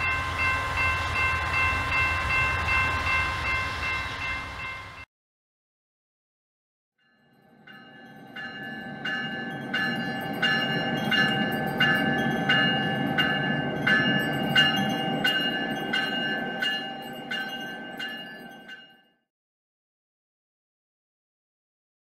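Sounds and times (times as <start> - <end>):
locomotive bell ringing: 0.0 - 5.1, 7.0 - 19.3
low rumble of moving train: 0.0 - 5.1, 7.3 - 19.0.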